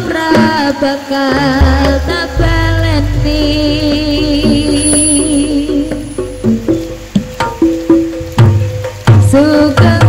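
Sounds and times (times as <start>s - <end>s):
sharp drum strokes: 1.4s - 10.0s
held low notes: 1.6s - 8.4s.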